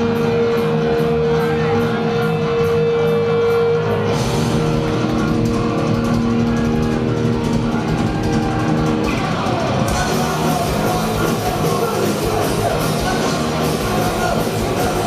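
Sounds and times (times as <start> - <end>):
punk rock band playing live: 0.0 - 15.0.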